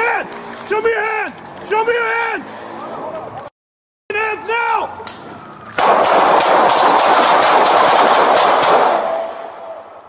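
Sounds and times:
rapid gunshots: 5.8 - 9.3.

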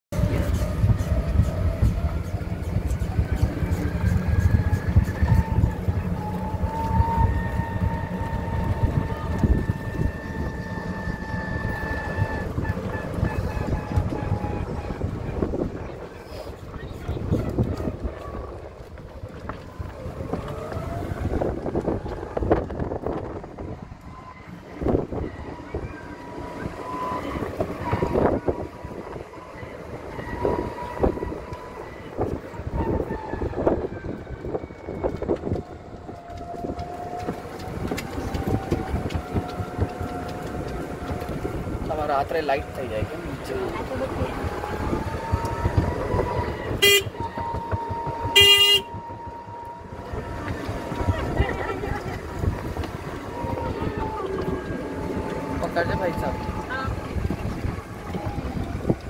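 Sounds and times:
vehicle engine rumble and whine: 0.1 - 59.0.

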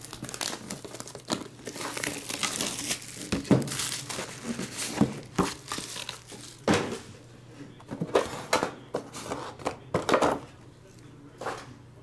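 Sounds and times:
plastic shrink wrap crinkling: 0.0 - 6.7.

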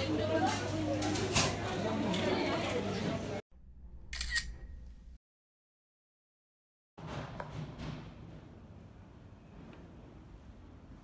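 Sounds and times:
camera shutter click: 4.1 - 4.7.

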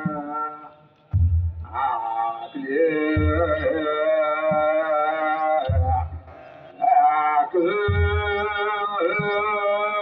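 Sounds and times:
low drum beats: 1.1 - 10.0
men chanting a hymn: 1.6 - 10.0.

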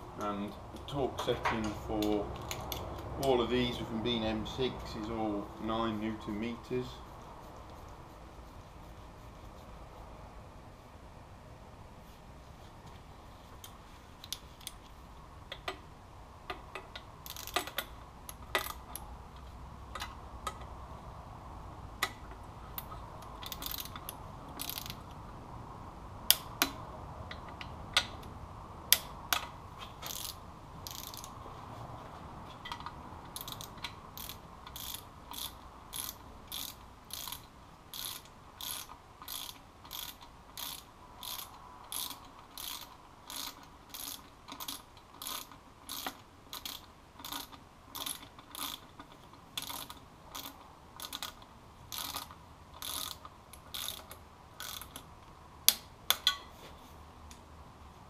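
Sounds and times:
ratchet wrench clicking: 16.5 - 19.0, 22.8 - 25.1, 26.3 - 28.3, 28.9 - 31.4, 32.7 - 55.1.

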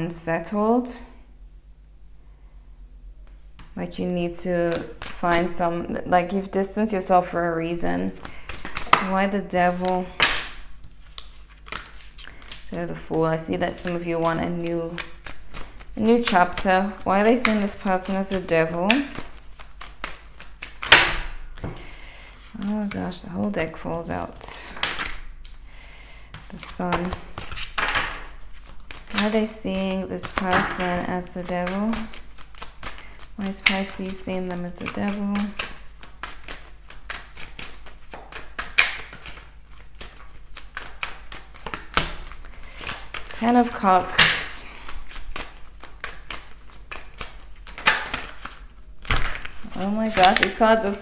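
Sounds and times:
cards being shuffled: 4.4 - 5.6, 7.8 - 51.0
cards slapping and falling: 4.6 - 5.6, 8.1 - 13.1, 13.7 - 23.0, 24.6 - 25.6, 26.3 - 51.0.

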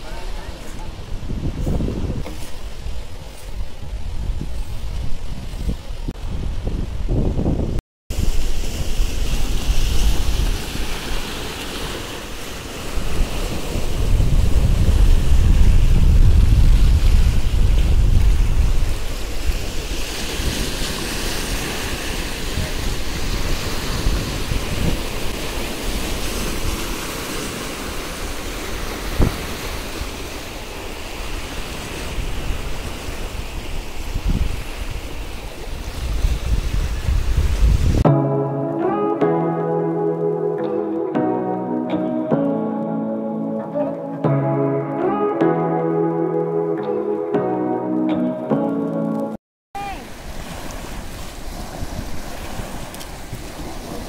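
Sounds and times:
wind buffeting microphone: 0.0 - 38.2, 50.2 - 54.0
sea waves breaking on rocks: 8.1 - 38.0, 49.8 - 54.0.

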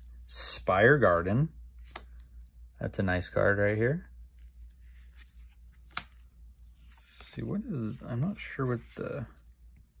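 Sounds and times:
cards rubbing and sliding: 4.3 - 9.4.

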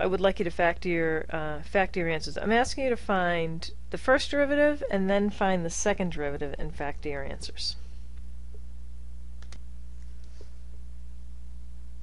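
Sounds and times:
low electrical hum: 0.0 - 12.0
computer mouse clicks: 9.4 - 10.5.

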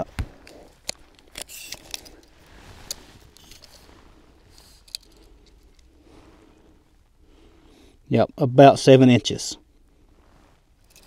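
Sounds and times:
light rustling: 0.0 - 6.8
tape measure clicks and rattles: 0.8 - 2.3.

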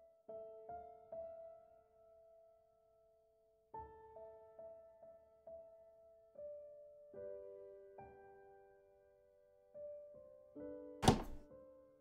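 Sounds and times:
slow soft piano music: 0.0 - 12.0
sharp thunk: 11.0 - 11.4.

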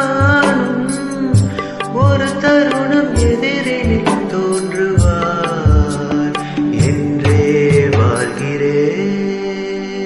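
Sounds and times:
low drum beats: 1.4 - 2.5, 3.2 - 4.4, 5.0 - 8.2.

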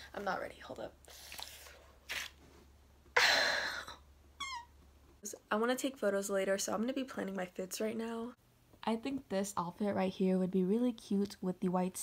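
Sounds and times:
wax strip ripped off: 1.2 - 2.4.

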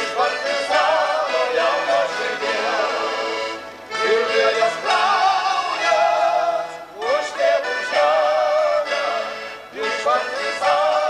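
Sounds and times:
band music: 0.0 - 11.0.

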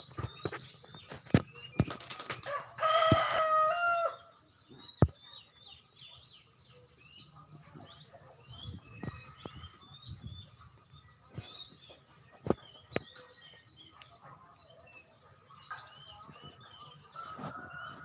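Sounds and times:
small birds chirping: 0.0 - 18.0
rooster crowing: 2.5 - 4.3.

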